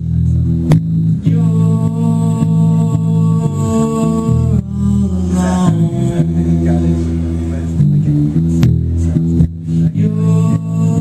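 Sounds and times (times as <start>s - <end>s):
electric bass low notes: 0.0s - 11.0s
person singing: 1.2s - 7.9s, 9.2s - 11.0s.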